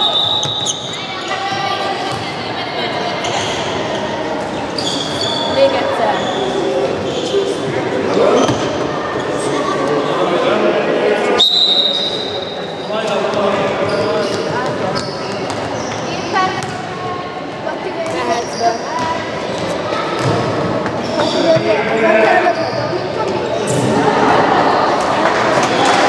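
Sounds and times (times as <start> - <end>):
referee's whistle: 0.0 - 1.0, 11.4 - 12.6
voices and shouts echoing: 0.0 - 26.0.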